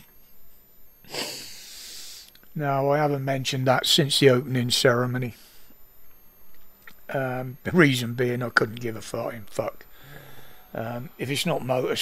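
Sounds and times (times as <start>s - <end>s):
man breathing out: 1.0s - 2.3s, 9.9s - 10.7s.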